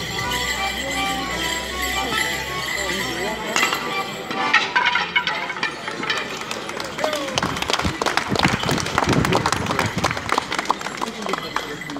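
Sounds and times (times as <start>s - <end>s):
people talking: 0.0s - 11.9s
onlookers clapping and applauding: 5.9s - 11.9s.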